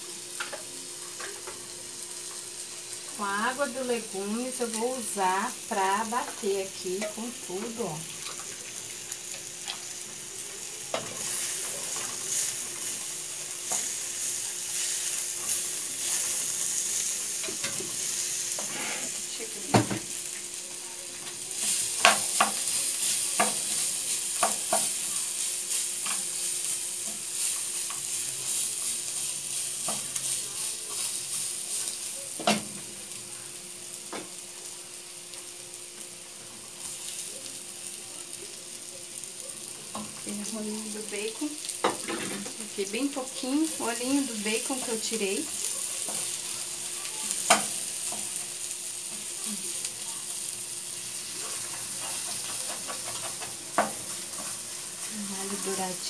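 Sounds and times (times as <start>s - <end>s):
sausage and garlic sizzling in oil: 0.0s - 56.0s.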